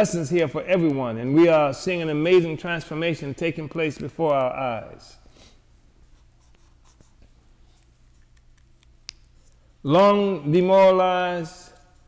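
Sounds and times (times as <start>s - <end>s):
steady low hum: 0.0s - 12.0s
highlighter scratching on paper: 5.4s - 8.2s.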